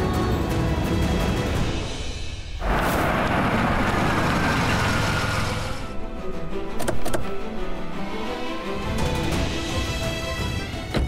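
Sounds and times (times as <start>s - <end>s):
background music: 0.0s - 11.0s
car engine running: 2.6s - 5.9s.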